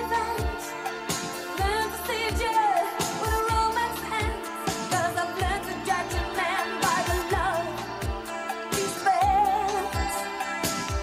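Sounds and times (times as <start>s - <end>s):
female vocal: 0.0s - 0.7s, 1.6s - 7.8s, 8.8s - 10.2s
electronic drum beat: 0.0s - 11.0s.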